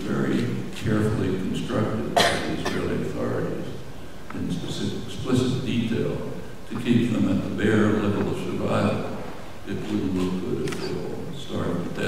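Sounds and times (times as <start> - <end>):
man talking into a microphone: 0.0 - 12.0
sharp cough: 2.1 - 3.1.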